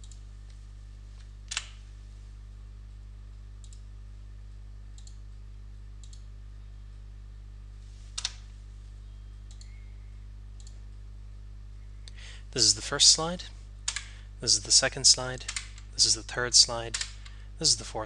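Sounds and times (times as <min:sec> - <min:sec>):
low electrical hum: 0:00.0 - 0:18.0
computer click: 0:13.9 - 0:14.2, 0:16.9 - 0:17.4.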